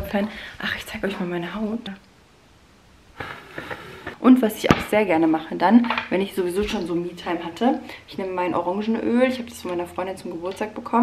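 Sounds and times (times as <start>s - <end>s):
woman blowing out breath: 3.2s - 4.2s.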